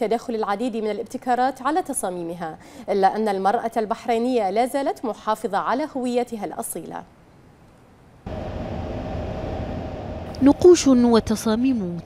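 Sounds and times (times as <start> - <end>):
background hum: 7.0 - 12.0
low rumble: 8.3 - 11.5.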